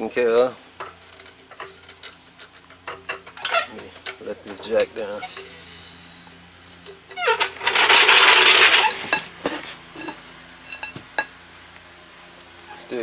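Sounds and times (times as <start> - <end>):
hydraulic hiss: 5.1 - 6.9.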